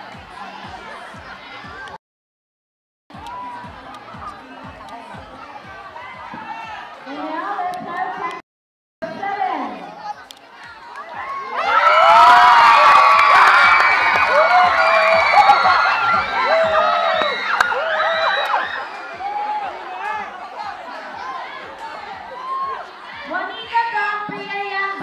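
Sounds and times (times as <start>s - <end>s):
crowd cheering and shouting: 0.0s - 2.0s, 3.1s - 8.3s, 9.1s - 25.0s
scattered shouts and chatter: 0.0s - 2.0s, 3.1s - 8.4s, 9.1s - 25.0s.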